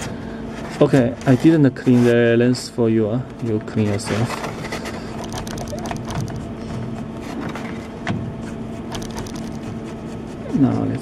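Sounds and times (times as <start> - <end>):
small metal parts clicking: 5.1 - 6.4, 8.9 - 9.6.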